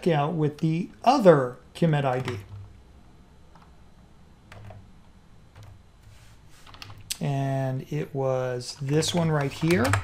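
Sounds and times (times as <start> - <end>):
faint keyboard typing: 2.0 - 3.8, 4.5 - 4.9, 5.5 - 5.8, 6.6 - 7.3, 8.6 - 10.0.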